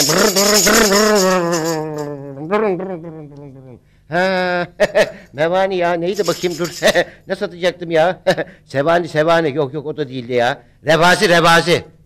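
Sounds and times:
shaker-like rattling: 0.0 - 2.2, 6.1 - 7.1
man imitating car engine: 0.0 - 4.8.

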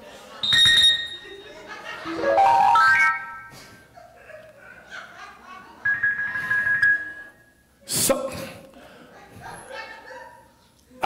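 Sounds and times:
soft organ-style keyboard notes: 2.0 - 3.6.

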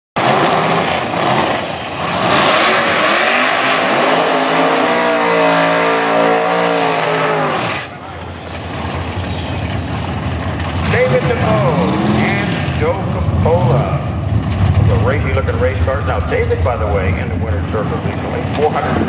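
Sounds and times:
car burnout engine revving: 0.2 - 19.0.

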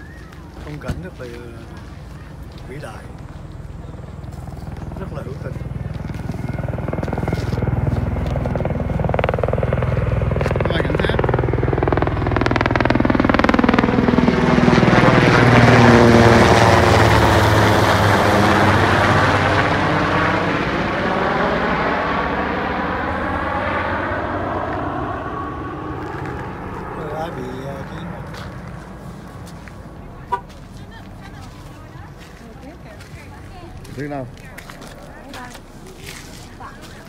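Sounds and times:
helicopter flying overhead: 0.0 - 37.0.

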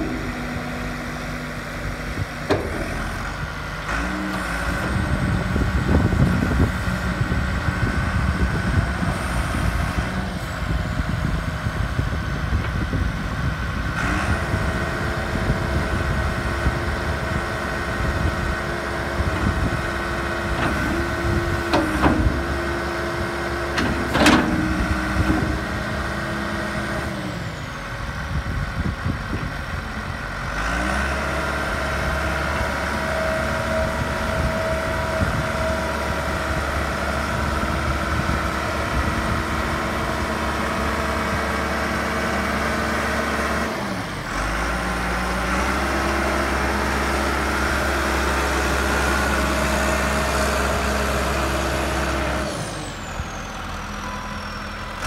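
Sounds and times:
wheel loader diesel engine: 0.0 - 55.0.

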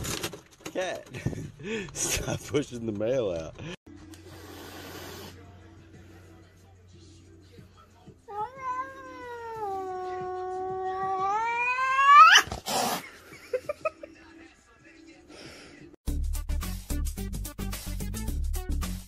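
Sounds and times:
cat yowling: 8.3 - 13.0.

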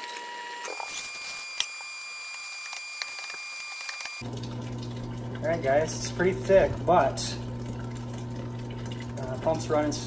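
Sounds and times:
pump humming: 0.0 - 10.0
liquid running into a tank: 2.8 - 10.0.

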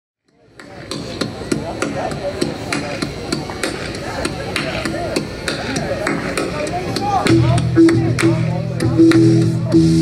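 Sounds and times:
hand claps in steady beat: 2.7 - 9.6.

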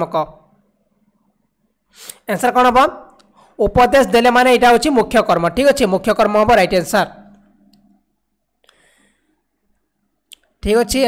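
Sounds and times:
person speaking: 2.0 - 8.0, 10.3 - 11.0.

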